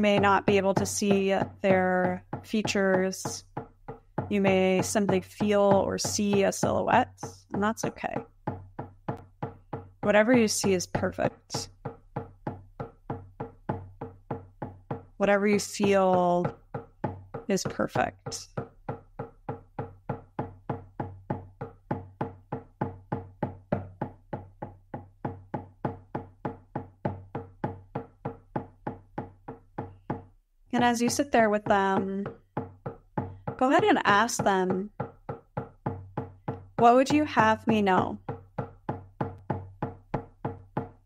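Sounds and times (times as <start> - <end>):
drum struck in steady beat: 0.0 - 41.0.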